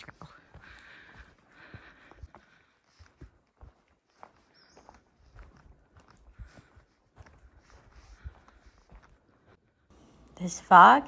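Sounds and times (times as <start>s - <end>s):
footsteps on dirt trail: 0.0s - 10.1s.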